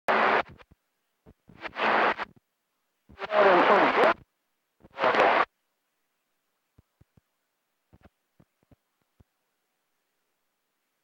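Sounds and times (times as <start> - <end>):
noisy radio reception bursts: 0.1 - 0.6, 1.5 - 2.4, 3.1 - 4.2, 4.8 - 5.5.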